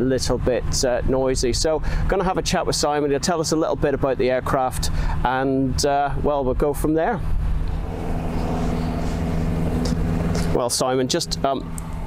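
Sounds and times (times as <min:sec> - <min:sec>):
glider engine droning: 0:07.2 - 0:12.0.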